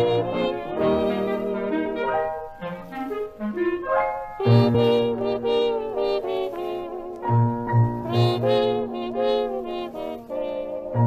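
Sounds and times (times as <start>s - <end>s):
dance orchestra playing: 0.0s - 10.4s.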